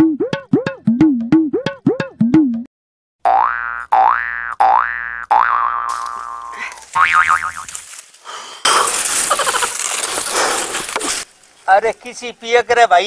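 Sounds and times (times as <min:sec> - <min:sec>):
wobbling warble: 0:00.0 - 0:02.7
cartoon boing glides: 0:00.0 - 0:06.2
outdoor noise hiss: 0:07.8 - 0:13.0.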